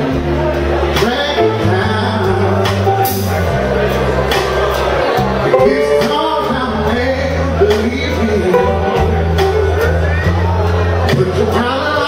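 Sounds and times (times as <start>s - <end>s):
blues-rock band: 0.0s - 12.0s
man singing: 0.9s - 2.8s, 5.6s - 9.6s, 11.1s - 12.0s
low bass line: 5.3s - 10.8s.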